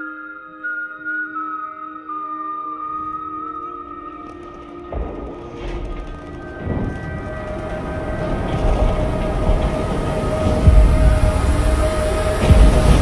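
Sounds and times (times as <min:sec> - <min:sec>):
held tone of film score: 0:00.0 - 0:13.0
moving train rumble: 0:03.8 - 0:13.0
heavy low thuds: 0:04.1 - 0:13.0.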